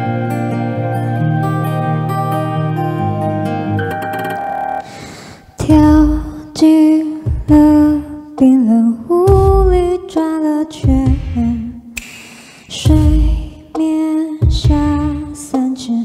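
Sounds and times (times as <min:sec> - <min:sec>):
backing music: 0:00.0 - 0:04.9
woman singing a slow ballad: 0:05.6 - 0:11.9, 0:12.7 - 0:16.0.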